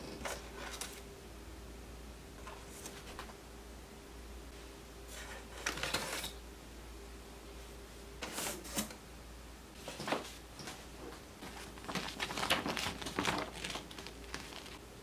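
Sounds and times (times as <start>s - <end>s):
paper sheets rustling: 0.0s - 1.0s, 2.4s - 3.4s, 9.8s - 14.8s.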